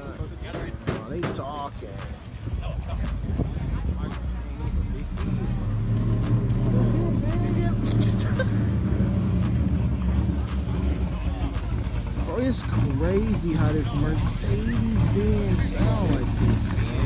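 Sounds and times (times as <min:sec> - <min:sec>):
people's voices: 0:00.0 - 0:17.0
car engine droning: 0:02.1 - 0:17.0.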